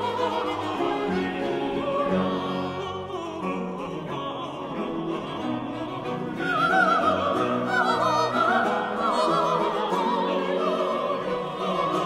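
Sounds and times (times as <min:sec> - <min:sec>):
sacred choral music with viols: 0:00.0 - 0:12.0.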